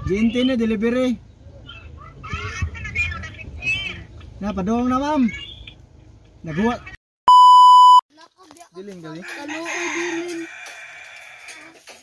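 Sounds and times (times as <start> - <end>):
rooster crowing: 9.2 - 11.7.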